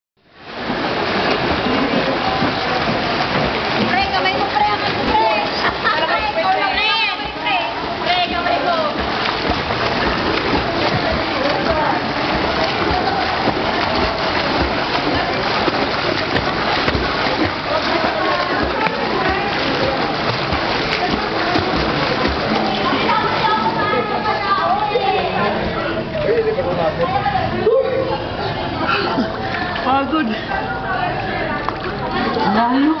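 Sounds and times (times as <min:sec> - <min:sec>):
swimmers splashing in a pool: 0:00.3 - 0:33.0.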